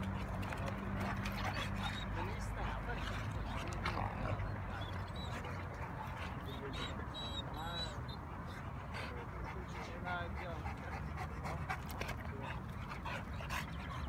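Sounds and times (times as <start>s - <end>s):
dogs whining: 1.0s - 9.1s.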